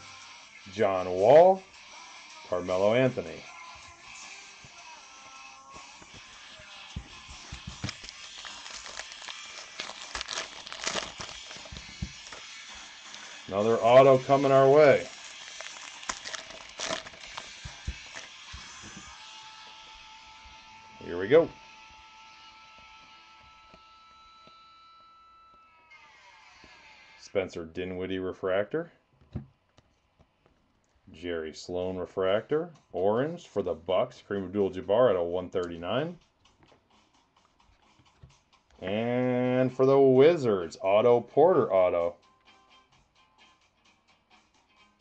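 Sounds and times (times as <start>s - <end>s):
faint background music: 0.0s - 26.0s, 27.1s - 45.0s
foil wrapper crinkling and tearing: 7.2s - 19.2s
faint electrical whine: 7.6s - 28.0s.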